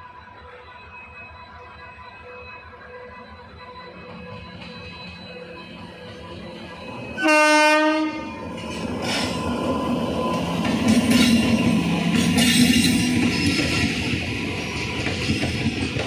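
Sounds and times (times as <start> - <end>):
train rumbling past: 2.0 - 16.0
locomotive horn blast: 7.2 - 8.4.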